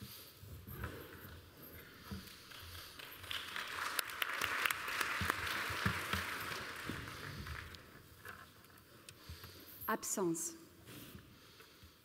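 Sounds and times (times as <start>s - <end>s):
audience applauding: 2.8s - 8.0s.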